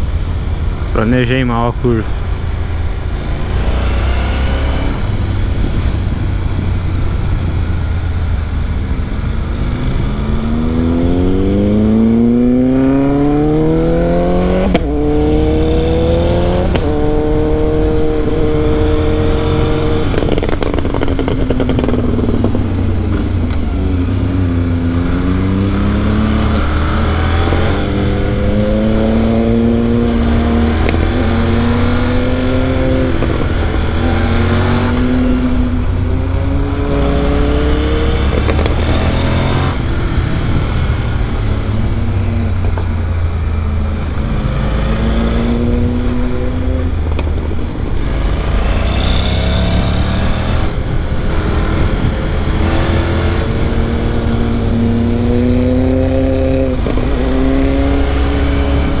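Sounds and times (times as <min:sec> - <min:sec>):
motorcycle engine revving: 0:01.6 - 0:59.0.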